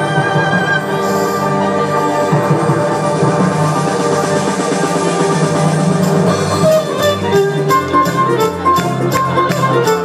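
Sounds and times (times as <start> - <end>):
electric violin: 0.0 - 10.0.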